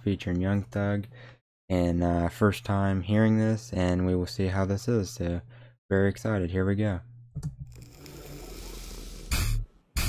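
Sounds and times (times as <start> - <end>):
music soundtrack: 9.2 - 10.0.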